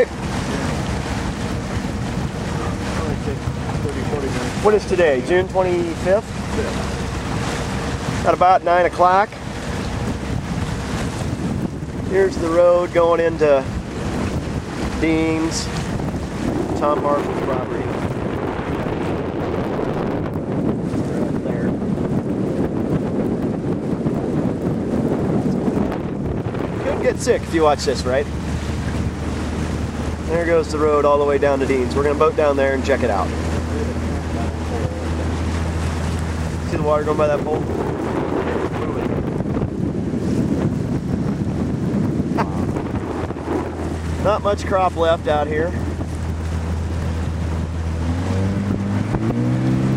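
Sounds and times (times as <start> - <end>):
boat water noise: 0.0 - 49.9
motorboat engine running: 0.0 - 49.9
wind buffeting microphone: 0.0 - 49.9.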